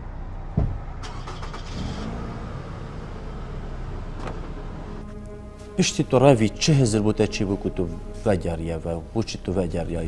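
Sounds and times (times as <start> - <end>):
car engine idling: 0.0 - 5.4.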